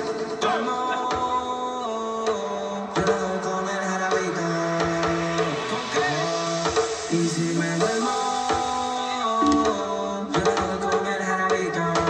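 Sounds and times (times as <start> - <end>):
house music melody: 9.4 - 10.2.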